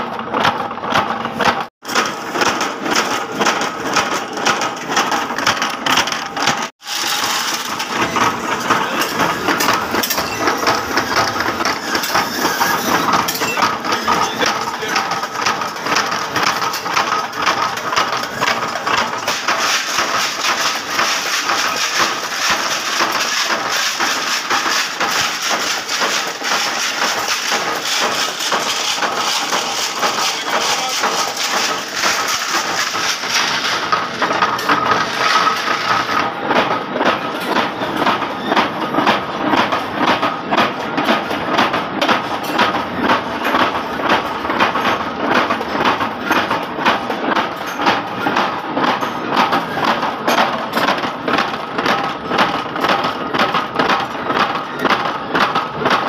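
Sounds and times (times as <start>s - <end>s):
metal nuts tumbling in steel drum: 1.8s - 36.6s.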